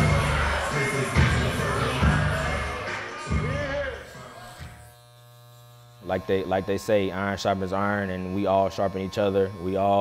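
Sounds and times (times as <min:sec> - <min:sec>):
music: 0:00.0 - 0:04.7
electric hair clippers buzzing: 0:00.3 - 0:10.0.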